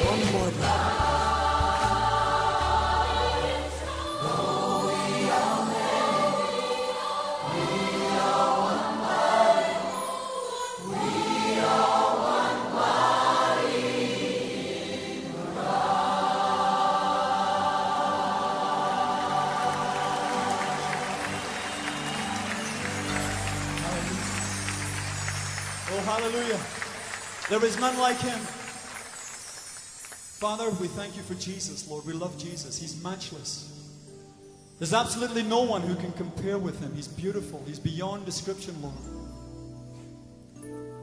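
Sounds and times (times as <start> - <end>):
band accompaniment: 0.0 - 3.6, 19.3 - 30.4
choir and congregation singing: 0.0 - 29.6.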